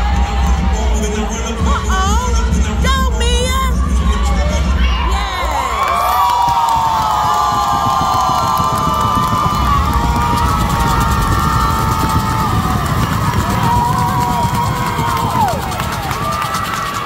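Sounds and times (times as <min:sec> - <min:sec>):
crowd cheering and screaming: 0:00.0 - 0:01.7, 0:04.8 - 0:17.0.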